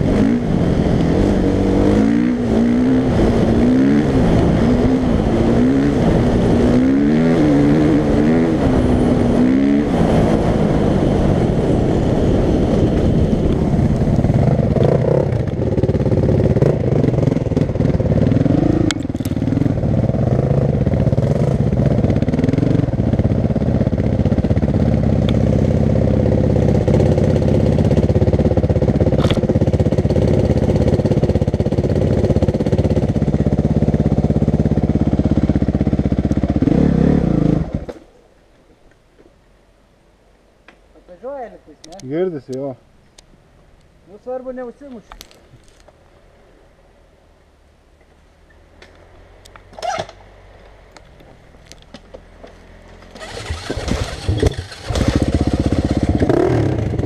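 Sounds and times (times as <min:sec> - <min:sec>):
dirt bike engine revving: 0:00.0 - 0:38.0, 0:53.1 - 0:57.0
sharp clicks: 0:41.8 - 0:43.9.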